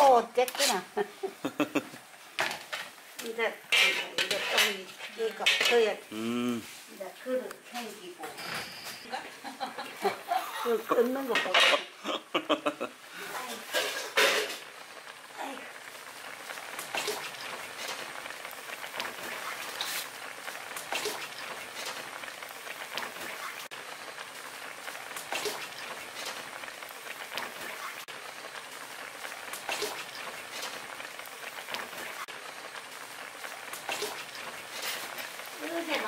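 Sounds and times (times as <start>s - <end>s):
soup bubbling at rolling boil: 0.0s - 8.5s, 9.3s - 36.0s.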